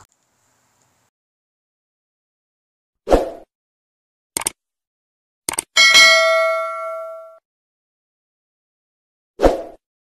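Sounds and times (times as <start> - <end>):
notification bell ding: 5.8 - 7.4.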